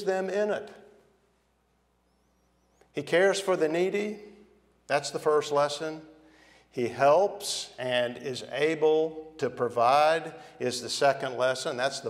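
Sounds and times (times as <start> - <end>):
man speaking: 0.0 - 0.9, 2.9 - 12.0.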